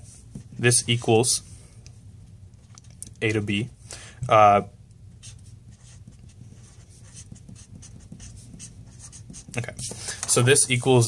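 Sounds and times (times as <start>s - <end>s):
marker writing on paper: 5.2s - 10.0s.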